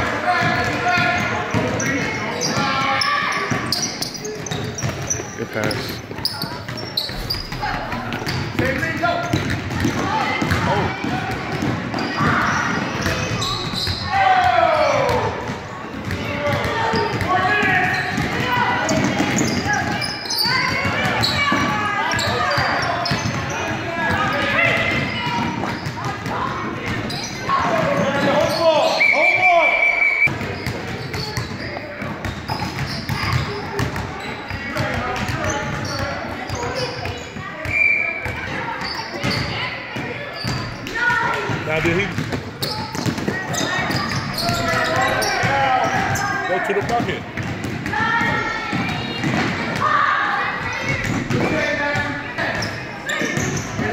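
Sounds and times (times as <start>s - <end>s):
echoing voices and shouts: 0.0s - 30.4s, 33.1s - 53.9s
basketball bouncing on wooden floor: 3.4s - 14.0s, 40.5s - 49.6s.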